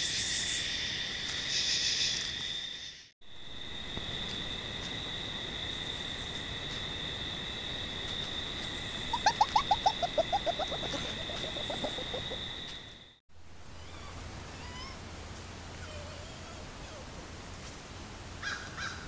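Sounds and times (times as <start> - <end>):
night insects droning: 0.0 - 14.5
fox yipping: 9.1 - 12.4.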